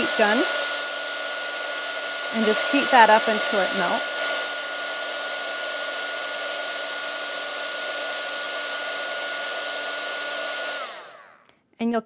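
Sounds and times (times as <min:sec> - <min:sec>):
heat gun blowing air: 0:00.0 - 0:11.5.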